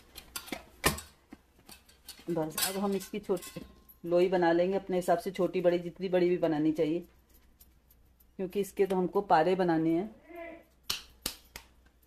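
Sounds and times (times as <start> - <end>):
hands kneading dough: 4.8 - 12.0
bangles clicking against metal bowl: 5.8 - 9.3.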